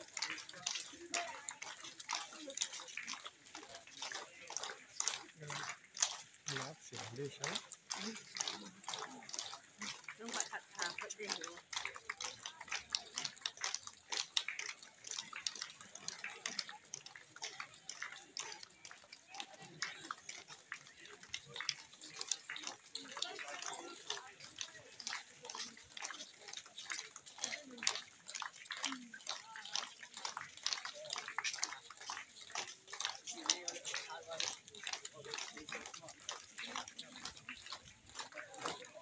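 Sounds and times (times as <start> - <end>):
footsteps on pavement: 0.0 - 39.0.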